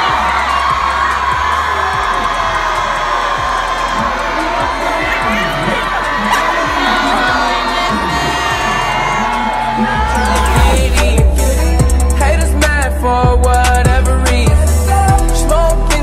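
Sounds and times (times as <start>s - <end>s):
crowd cheering and screaming: 0.0s - 11.8s
music playing: 0.0s - 16.0s.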